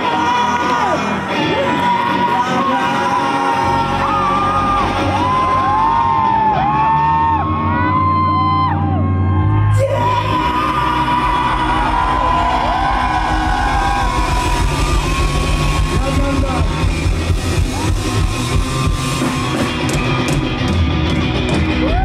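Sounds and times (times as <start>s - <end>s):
man singing and yelling: 0.0s - 6.1s, 9.7s - 14.8s
live rock band playing: 9.2s - 22.0s.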